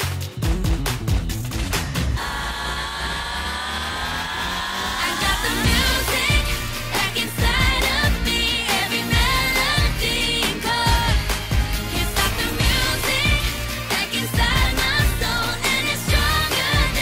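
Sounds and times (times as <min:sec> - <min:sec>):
upbeat pop song with vocals: 0:00.0 - 0:17.0.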